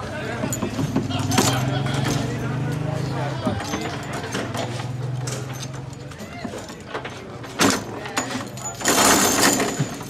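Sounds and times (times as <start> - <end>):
rods and springs rattling: 0.3 - 10.0.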